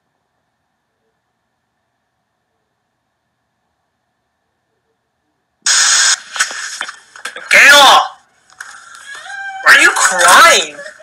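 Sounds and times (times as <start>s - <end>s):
loud hissing noise: 5.7s - 7.0s.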